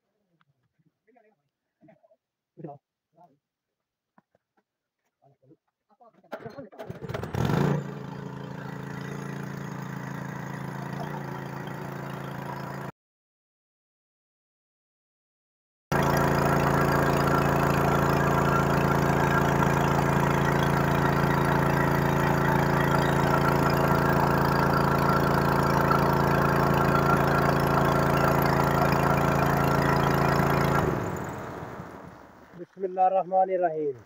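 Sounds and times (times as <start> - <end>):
petrol engine driving water pump: 6.3 - 12.9, 15.9 - 33.6.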